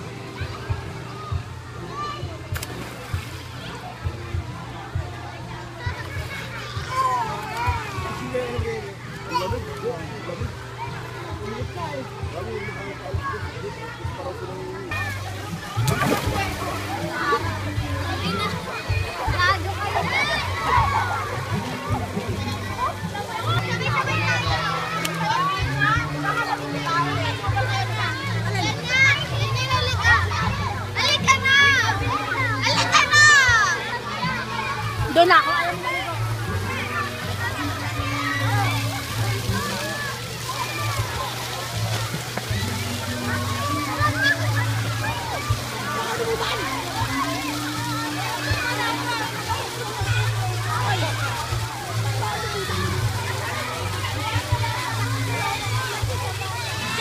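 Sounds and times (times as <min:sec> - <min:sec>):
babble of voices: 0:00.0 - 0:57.0
children shouting and squealing: 0:00.0 - 0:57.0
pool water splashing: 0:00.0 - 0:57.0
music with bass line: 0:14.8 - 0:57.0.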